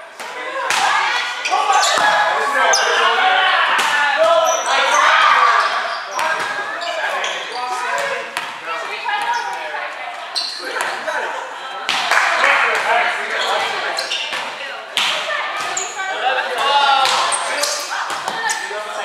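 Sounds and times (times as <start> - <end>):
volleyball slapping arms and floor: 0.2 - 2.2, 6.1 - 6.7, 7.9 - 9.7, 11.9 - 18.8
players calling out: 0.3 - 19.0.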